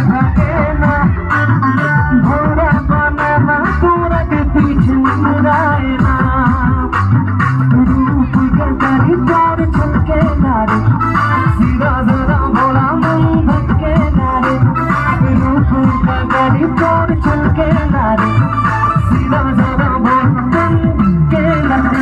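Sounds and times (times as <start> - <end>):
loud amplified music: 0.0 - 22.0
man singing into a microphone: 0.0 - 22.0.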